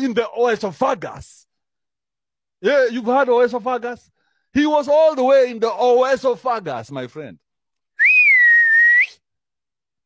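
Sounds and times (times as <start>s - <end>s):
whistled note: 8.0s - 9.2s.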